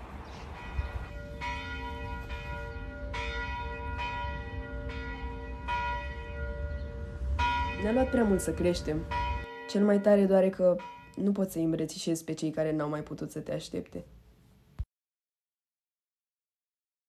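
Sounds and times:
bells ringing: 0:00.5 - 0:11.4.

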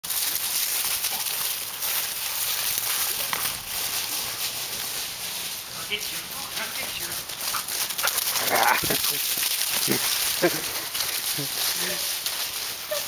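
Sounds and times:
dry leaves rustling: 0:00.0 - 0:13.0.

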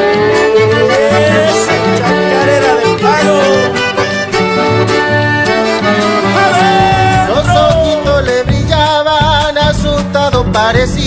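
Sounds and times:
accordion melody: 0:00.0 - 0:11.0
strummed rhythm: 0:00.0 - 0:11.0.

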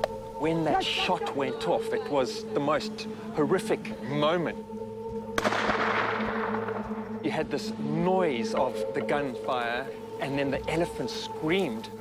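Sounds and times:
rifle shot: 0:05.4 - 0:06.9.

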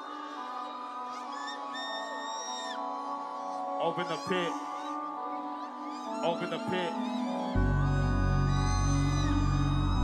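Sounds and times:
sustained synth chords: 0:05.0 - 0:10.0.

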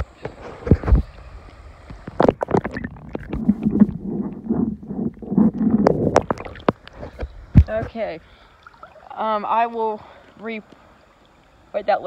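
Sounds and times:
muffled underwater moving water: 0:00.0 - 0:12.0.

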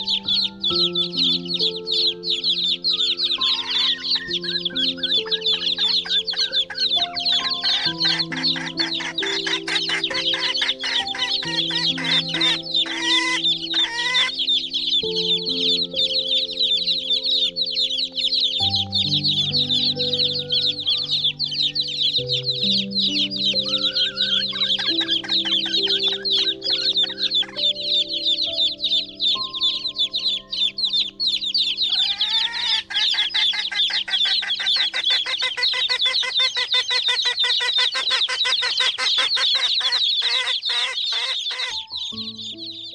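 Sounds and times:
chickens calling: 0:00.0 - 0:42.9
soft background music: 0:00.0 - 0:42.9.

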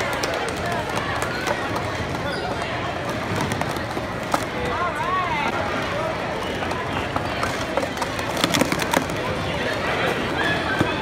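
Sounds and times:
plastic cups clicking and clattering: 0:00.0 - 0:04.8, 0:06.7 - 0:09.8
crowd chattering: 0:00.0 - 0:11.0.

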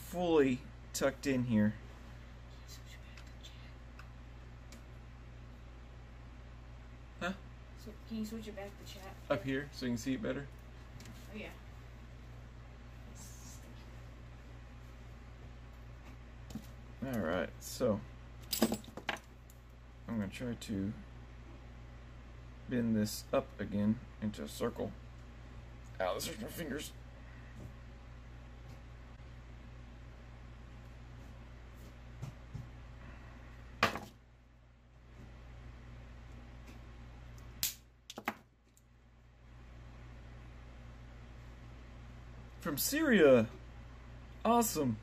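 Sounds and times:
low steady hum: 0:00.0 - 0:45.0.

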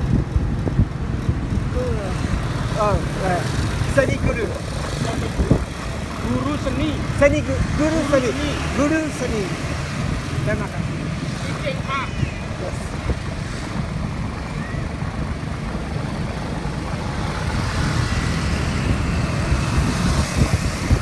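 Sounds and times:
city traffic: 0:00.0 - 0:21.0
motorbike road noise: 0:00.0 - 0:21.0.

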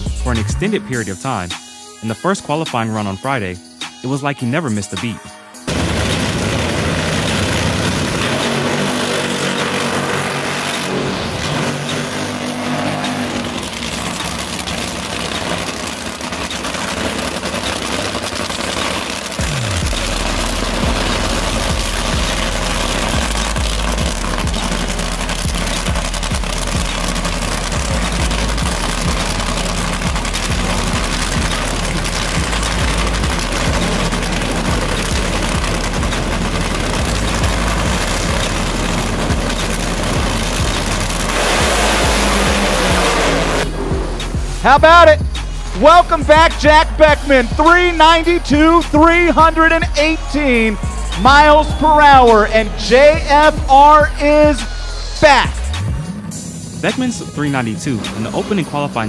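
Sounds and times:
background music: 0:00.0 - 0:15.5, 0:19.3 - 0:59.0
race car engine running rough: 0:05.6 - 0:59.0
low pulsing beat: 0:32.3 - 0:54.6.

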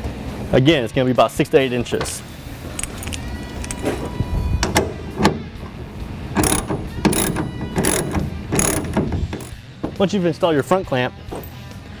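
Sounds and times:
clamp ratcheting: 0:06.4 - 0:09.6.

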